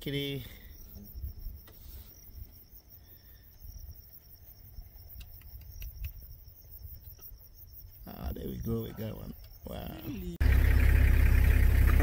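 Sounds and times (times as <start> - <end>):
insects chirring: 0.0 - 11.9.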